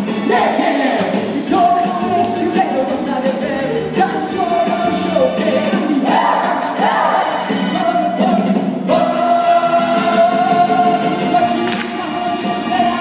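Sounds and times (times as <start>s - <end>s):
backing music: 0.0s - 13.0s
cast singing together: 0.0s - 13.0s.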